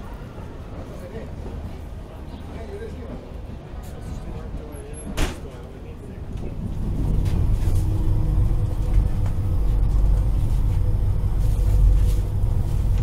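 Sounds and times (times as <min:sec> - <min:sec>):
voices: 0:00.0 - 0:13.0
train cabin rumble: 0:00.7 - 0:13.0.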